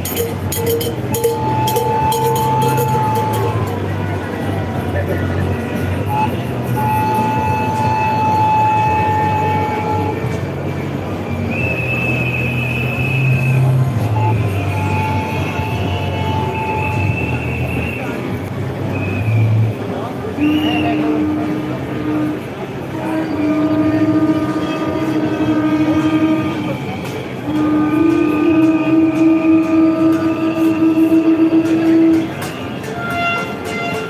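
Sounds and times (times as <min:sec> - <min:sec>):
horn pulsing quickly: 0:00.0 - 0:04.3, 0:20.6 - 0:34.0
large walking crowd: 0:00.0 - 0:34.0
long horn blasts: 0:00.0 - 0:34.0.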